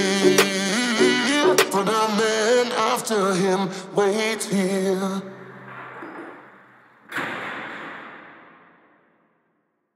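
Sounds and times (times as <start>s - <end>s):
song: 0.0s - 3.4s.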